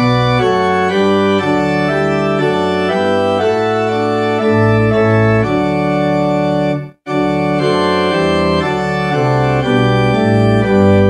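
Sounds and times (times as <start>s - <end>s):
church organ playing a hymn: 0.0s - 11.0s.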